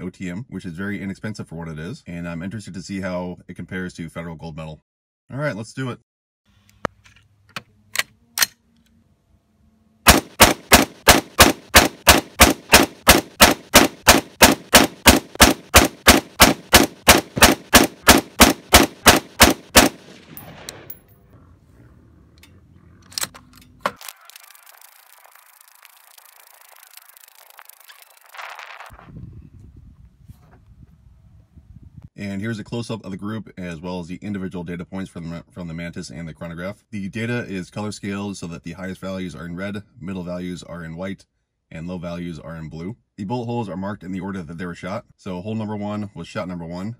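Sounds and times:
rapid rifle shots: 10.1s - 20.8s.

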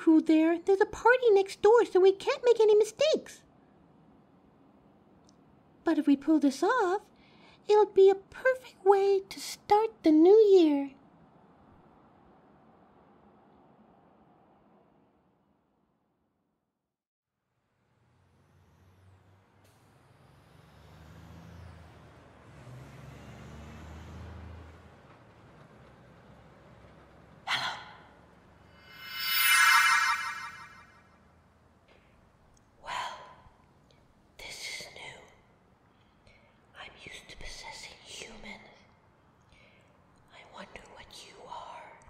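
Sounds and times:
woman whispering: 34.4s - 35.5s, 36.7s - 39.0s, 40.3s - 42.0s.

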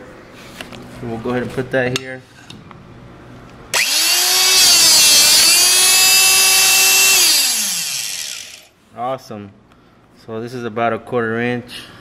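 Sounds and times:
electric motor whining: 3.8s - 8.7s
hydraulic punch driving through steel: 3.8s - 8.7s.

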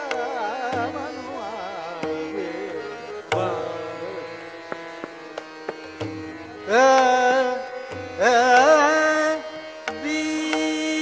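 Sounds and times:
light tabla strokes: 0.0s - 11.0s.

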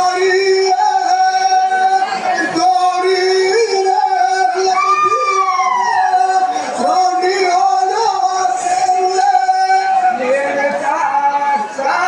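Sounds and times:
person singing folk song: 0.0s - 12.0s.

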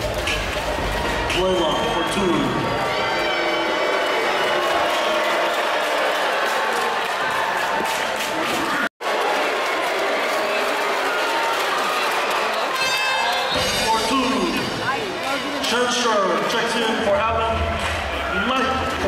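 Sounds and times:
music playing: 0.0s - 3.7s
spectators talking: 10.4s - 19.0s.

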